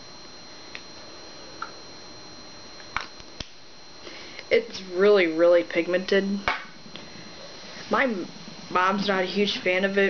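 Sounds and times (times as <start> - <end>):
thin high whine: 0.0 - 10.0.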